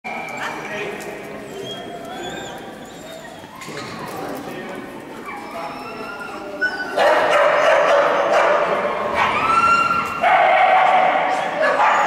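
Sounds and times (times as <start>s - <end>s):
people talking: 0.1s - 9.3s
dogs barking and yipping: 5.2s - 12.0s.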